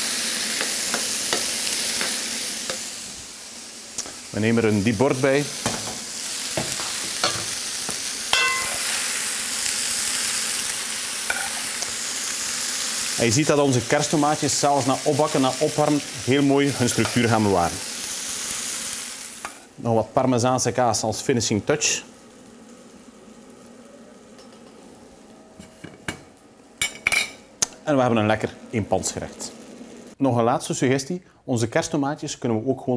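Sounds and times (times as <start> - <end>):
food sizzling in a frying pan: 0.0 - 30.2
kitchen background noise: 0.0 - 30.2
food being stirred: 8.3 - 9.1, 11.2 - 12.0, 15.8 - 17.4
ringing clink: 8.4 - 8.8.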